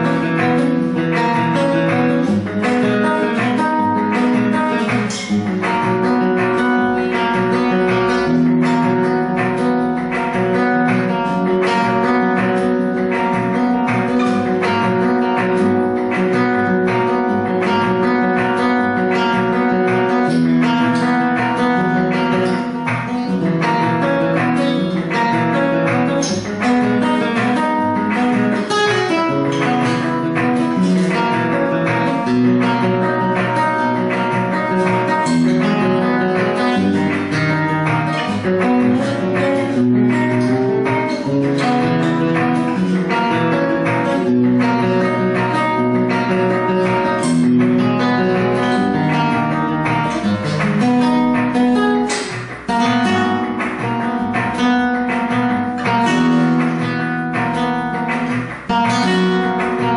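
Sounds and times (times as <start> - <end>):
flamenco guitar playing: 0.0 - 59.9.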